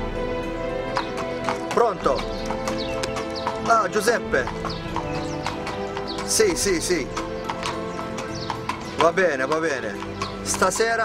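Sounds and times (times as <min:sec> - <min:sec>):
background music with held notes: 0:00.0 - 0:11.0
horse hooves clopping on hard ground: 0:00.0 - 0:11.0.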